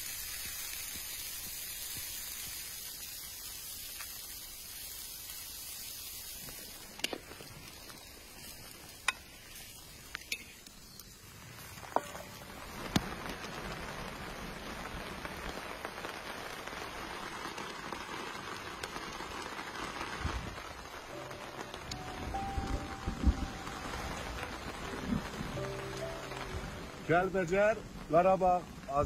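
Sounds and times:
rain pattering on plastic tarp: 0.0s - 10.3s, 11.1s - 29.0s.

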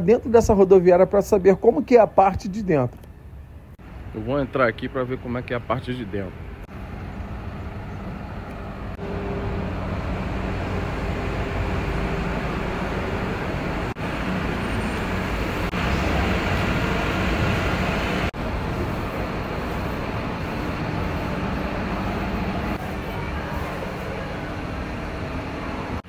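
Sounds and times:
bus engines idling: 0.0s - 26.0s.

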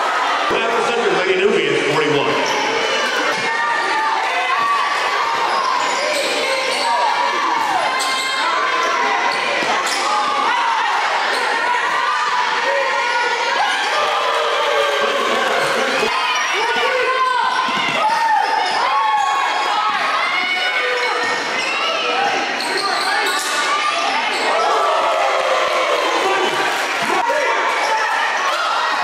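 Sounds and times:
sneakers squeaking: 2.3s - 3.8s, 4.6s - 10.4s, 15.5s - 24.7s.

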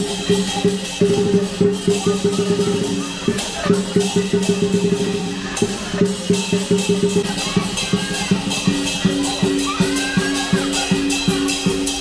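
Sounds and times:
cymbals crashing: 0.0s - 12.0s
drum beaten fast: 0.0s - 12.0s.

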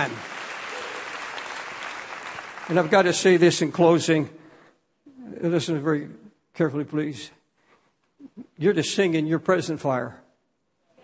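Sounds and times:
congregation applauding: 0.0s - 3.8s.

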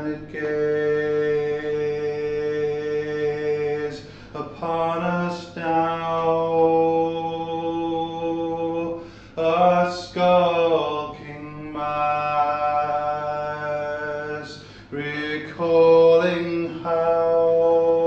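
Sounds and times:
man singing slow folk song: 0.0s - 18.0s.

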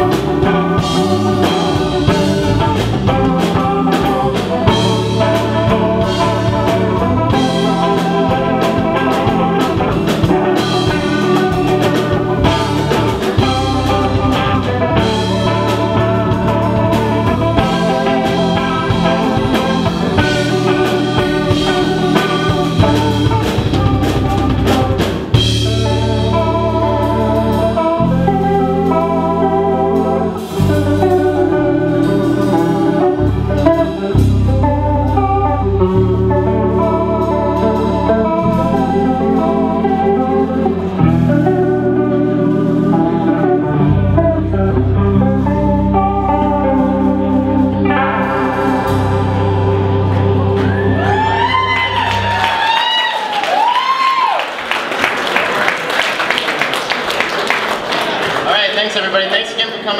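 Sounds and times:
electric bass: 0.0s - 54.4s
drum kit: 0.0s - 56.7s
electric guitar: 0.0s - 58.5s.

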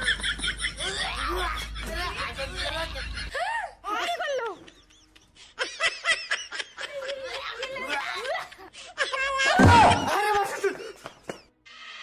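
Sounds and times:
person laughing: 0.0s - 11.3s.

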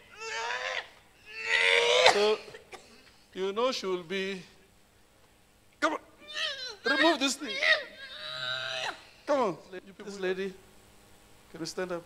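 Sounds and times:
person wailing cries: 0.0s - 2.6s, 6.2s - 9.1s.

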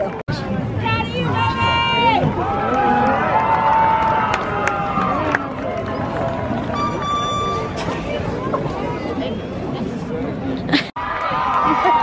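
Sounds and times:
crowd cheering and calling out: 0.0s - 9.0s, 11.0s - 12.0s.

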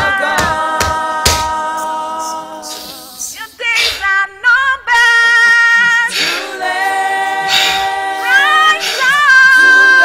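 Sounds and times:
women singing in harmony: 0.0s - 10.0s.

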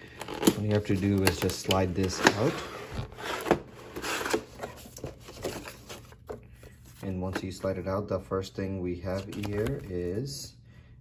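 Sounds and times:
packaging rustling and scraping: 0.0s - 7.7s
paper leaflets rustling: 9.1s - 10.2s.

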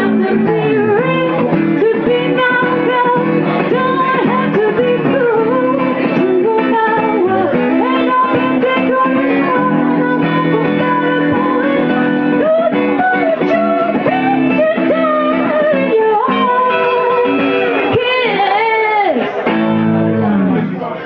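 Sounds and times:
live guitar: 0.0s - 21.0s
person singing: 0.0s - 21.0s.

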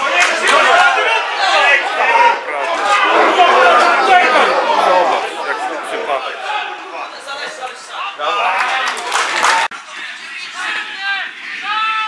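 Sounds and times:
men shouting and calling: 0.0s - 9.7s.

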